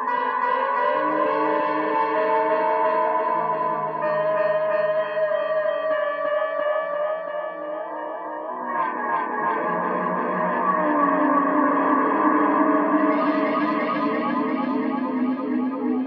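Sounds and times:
ambient music backing: 0.0s - 16.0s
electric guitar with echo: 0.0s - 16.0s.

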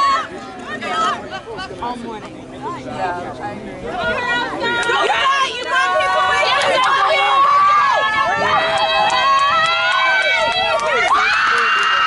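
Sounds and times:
spectators shouting and cheering: 0.0s - 1.8s, 3.8s - 12.0s.

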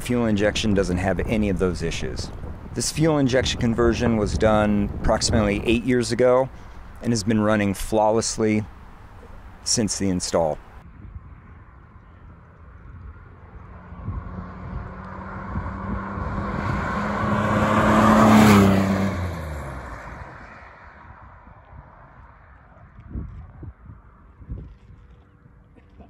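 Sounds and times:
car driving past: 11.8s - 22.7s.

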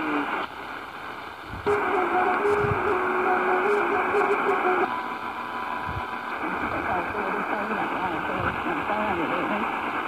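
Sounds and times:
radio static and hiss: 0.0s - 10.0s
radio whistle tone: 1.7s - 9.5s.

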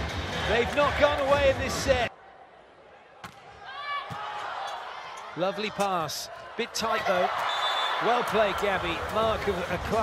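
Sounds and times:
sports hall hum: 0.0s - 10.0s.

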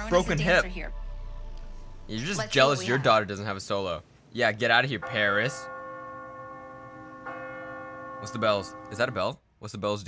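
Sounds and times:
bell ringing: 5.0s - 9.4s.

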